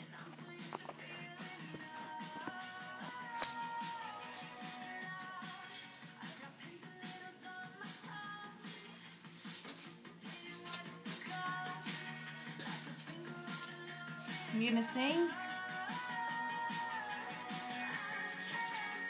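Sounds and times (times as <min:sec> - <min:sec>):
music: 0:00.0 - 0:19.0
toy maraca rattling: 0:01.6 - 0:05.4, 0:08.8 - 0:14.4, 0:15.8 - 0:16.3, 0:16.9 - 0:19.0.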